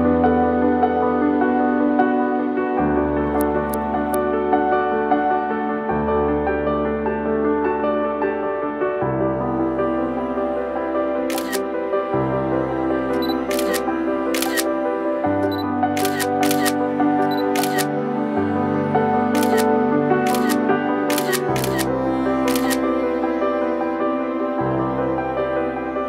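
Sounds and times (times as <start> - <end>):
slow background music: 0.0 - 26.0
camera shutter clicks: 11.3 - 11.6, 13.1 - 14.7, 15.4 - 17.9, 19.4 - 19.7, 20.3 - 21.9, 22.5 - 22.8.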